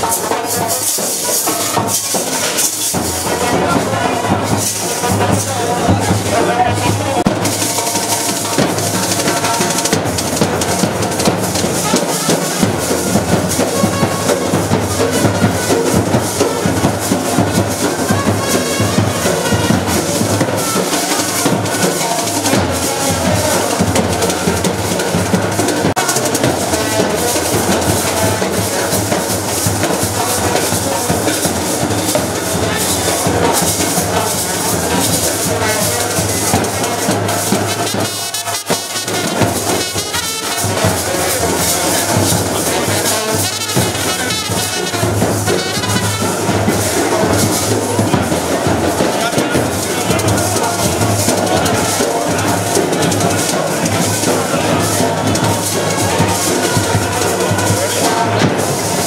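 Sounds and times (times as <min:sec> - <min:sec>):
brass horns: 0:00.0 - 0:59.0
drums beating: 0:00.0 - 0:59.0.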